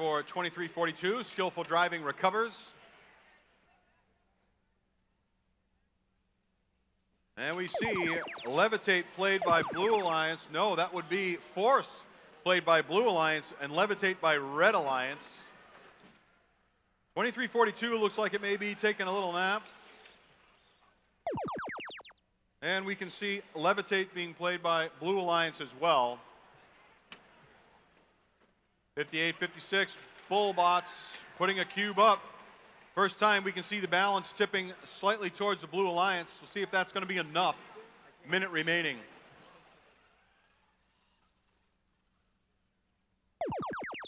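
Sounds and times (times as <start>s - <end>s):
falling electronic tones: 7.5s - 10.3s, 21.3s - 22.2s, 43.4s - 44.0s.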